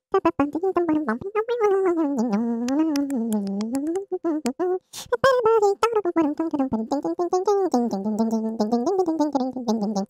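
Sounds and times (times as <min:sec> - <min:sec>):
person humming: 0:00.1 - 0:10.0
faint clicks: 0:02.1 - 0:04.6.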